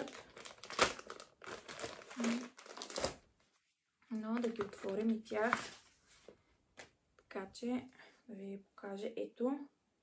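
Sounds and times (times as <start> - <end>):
plastic packaging crinkling: 0.0 - 3.3, 4.1 - 5.8.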